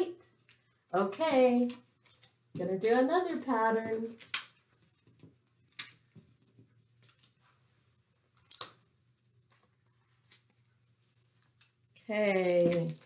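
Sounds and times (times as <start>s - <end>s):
paper rustling: 1.3s - 13.0s.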